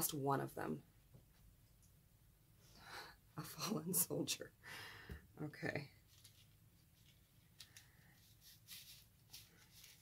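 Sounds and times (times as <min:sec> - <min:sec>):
paper rustling: 0:06.0 - 0:10.0.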